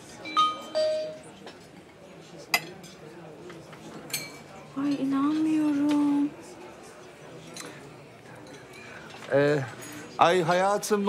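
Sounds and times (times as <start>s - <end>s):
two-note phone chime: 0.3s - 1.2s.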